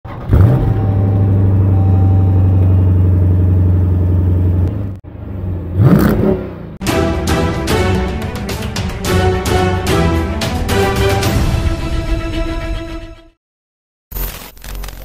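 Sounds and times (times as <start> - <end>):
car engine revving: 0.1 - 6.8
music with steady beat: 6.8 - 11.9.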